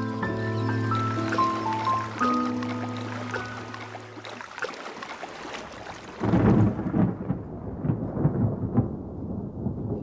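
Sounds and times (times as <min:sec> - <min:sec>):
thunder rumbling: 0:06.1 - 0:10.0.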